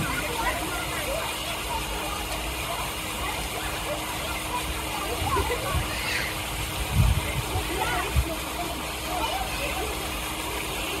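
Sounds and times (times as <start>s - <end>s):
background noise wash: 0.0s - 11.0s
children and adult voices: 0.0s - 11.0s.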